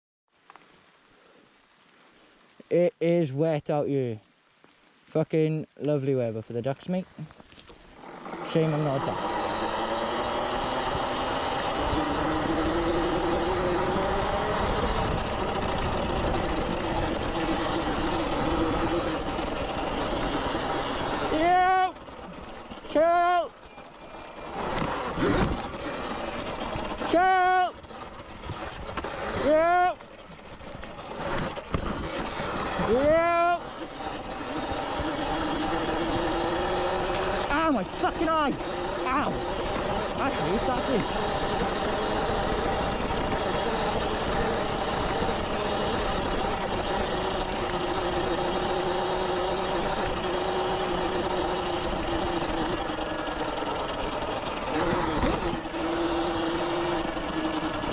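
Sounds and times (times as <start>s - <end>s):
electric motor whining: 7.6s - 57.9s.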